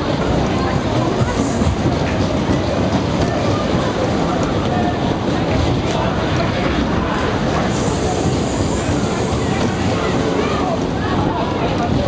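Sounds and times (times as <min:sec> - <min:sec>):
faint riders' voices: 0:00.0 - 0:12.0
ride wheels rumbling on track: 0:00.0 - 0:12.0.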